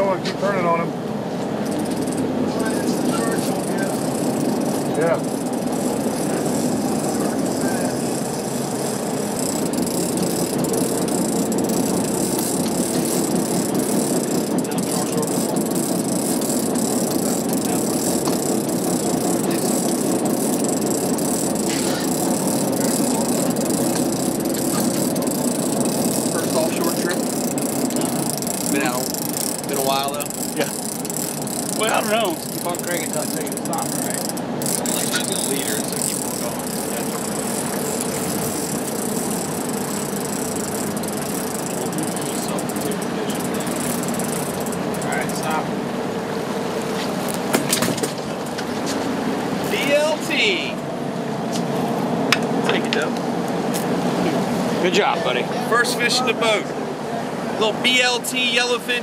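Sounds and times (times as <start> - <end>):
boat engines rumbling: 0.0 - 59.0
water noise: 0.0 - 59.0
wind: 0.0 - 59.0.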